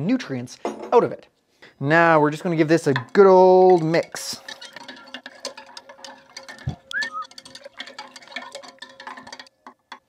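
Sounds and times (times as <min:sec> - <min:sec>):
spatula clinking in glass beaker: 0:02.2 - 0:10.0.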